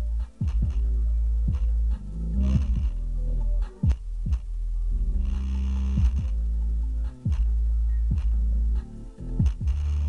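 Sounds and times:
deep bass line: 0.0 - 10.0
booming kick drums: 0.4 - 0.9, 1.5 - 3.0, 6.0 - 6.4, 8.1 - 8.4, 9.4 - 9.8.

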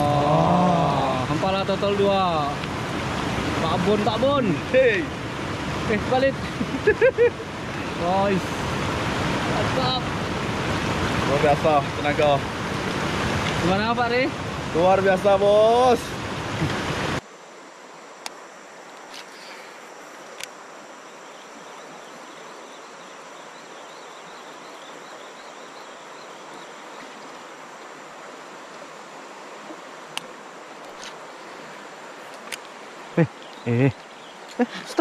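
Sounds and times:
even outdoor hiss: 0.0 - 35.0
insect chirps: 0.0 - 35.0.

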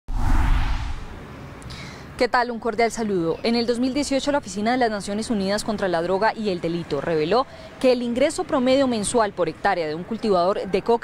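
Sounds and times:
whoosh with deep bass hit: 0.1 - 1.3.

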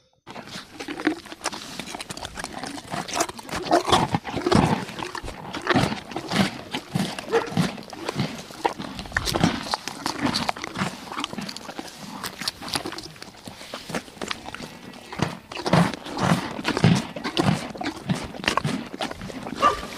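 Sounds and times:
zebras barking calls: 19.6 - 19.9.

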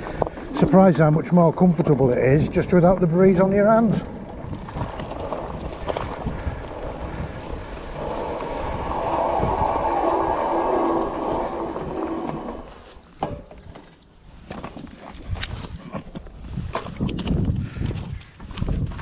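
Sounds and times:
bike crunching over gravel: 0.0 - 13.2
bike rattles: 0.0 - 19.0.

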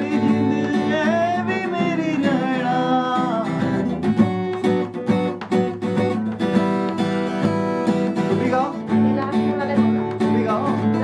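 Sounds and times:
man singing: 0.0 - 4.2, 10.1 - 11.0
acoustic guitar strumming: 0.0 - 11.0.

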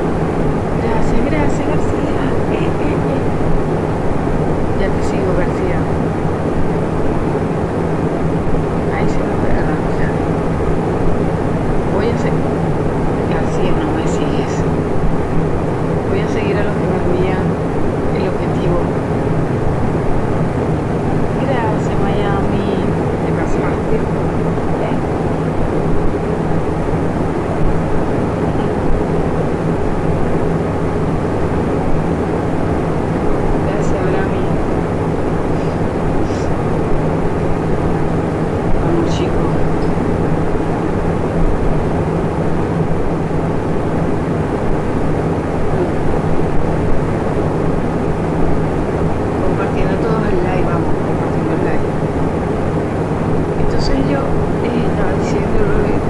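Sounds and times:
steady droning hum: 0.0 - 56.0.

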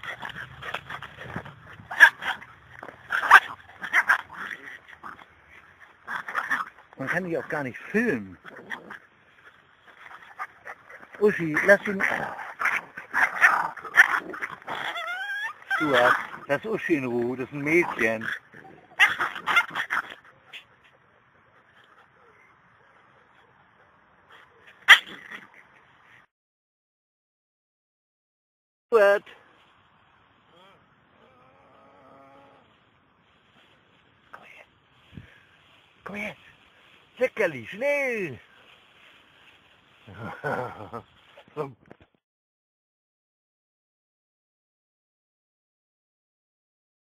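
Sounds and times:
small dog yipping: 0.0 - 4.8, 12.1 - 16.5, 18.6 - 20.6, 24.6 - 25.5
dogs scuffling in grass: 0.0 - 25.8, 32.6 - 42.0.

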